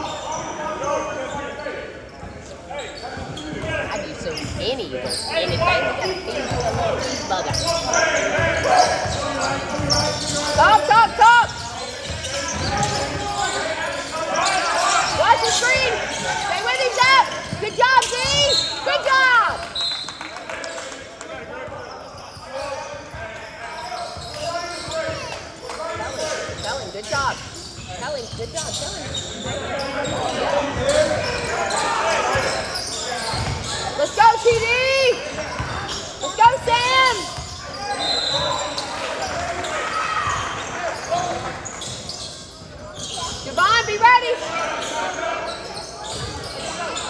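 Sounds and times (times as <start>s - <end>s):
sneakers squeaking on gym floor: 0.0s - 20.3s, 21.6s - 47.0s
voices echoing in hall: 0.0s - 47.0s
basketball bouncing: 33.3s - 33.8s, 34.4s - 36.0s.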